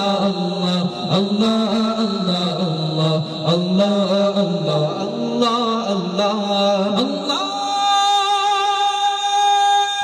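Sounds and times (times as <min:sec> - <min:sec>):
men singing through microphones: 0:00.0 - 0:10.0.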